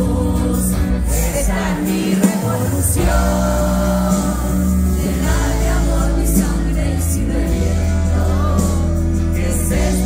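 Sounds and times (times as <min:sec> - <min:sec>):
bass line: 0:00.0 - 0:10.0
people singing: 0:00.0 - 0:10.0.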